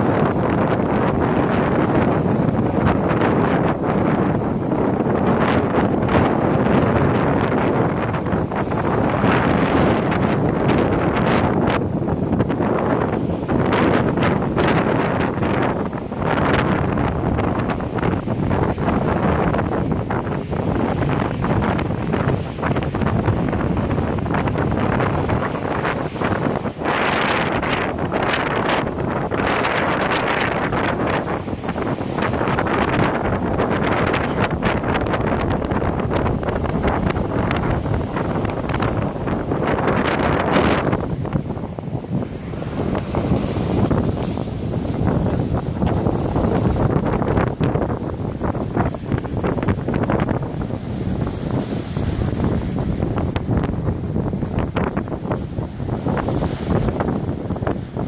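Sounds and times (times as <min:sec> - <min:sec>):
surf breaking against rocks: 0:00.0 - 0:58.0
wind buffeting microphone: 0:00.0 - 0:58.0.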